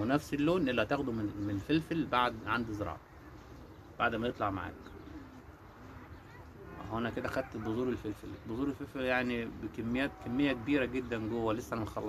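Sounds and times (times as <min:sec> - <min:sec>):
dove cooing: 0:00.0 - 0:12.0.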